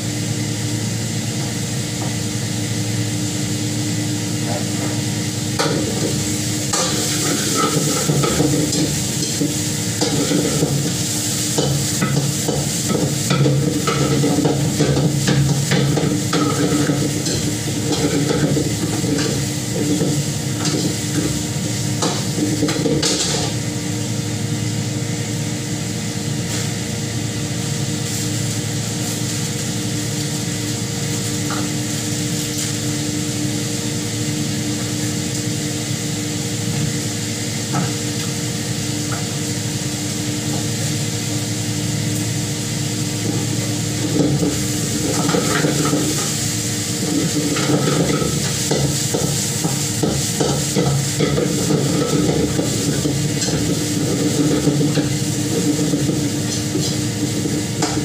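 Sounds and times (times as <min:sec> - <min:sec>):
steady hum: 0:00.0 - 0:58.0
food sizzling: 0:05.0 - 0:58.0.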